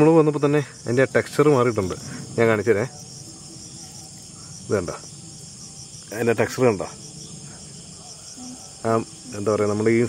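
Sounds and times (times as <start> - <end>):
night insects trilling: 0.0 - 10.0.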